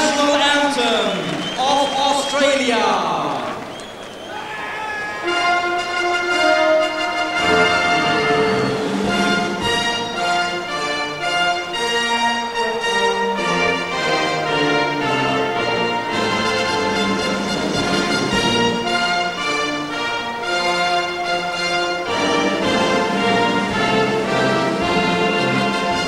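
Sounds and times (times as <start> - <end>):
orchestra playing slow chords: 5.2 - 26.0.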